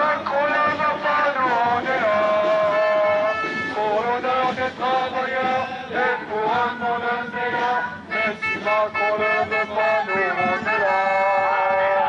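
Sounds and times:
music: 0.0 - 12.0
sung chant: 0.0 - 12.0.

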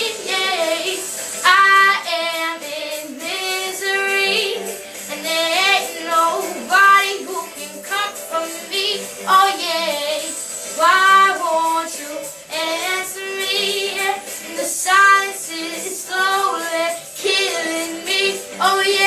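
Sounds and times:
girl singing with vibrato: 0.0 - 19.0.

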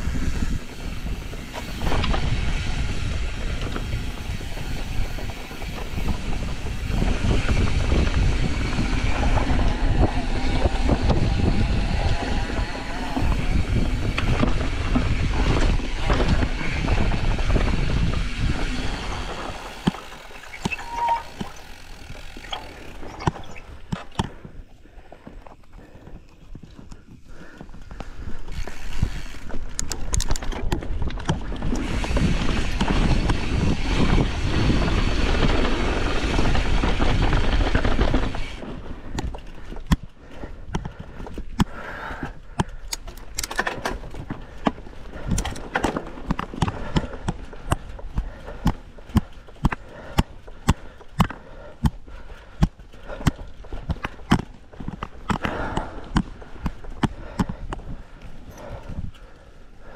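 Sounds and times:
bike knocks and rattles: 0.0 - 24.6, 28.2 - 58.8
bike tyres on loose dirt: 0.0 - 59.9
wind rush on microphone: 0.0 - 59.9.

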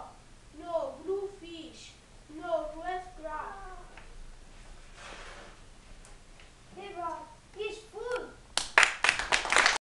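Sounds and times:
child speaking: 0.0 - 4.0, 6.7 - 8.4
hand clapping: 8.6 - 9.8.

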